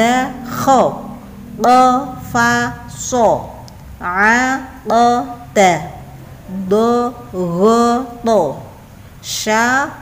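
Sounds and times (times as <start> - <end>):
woman reciting syllables: 0.0 - 10.0.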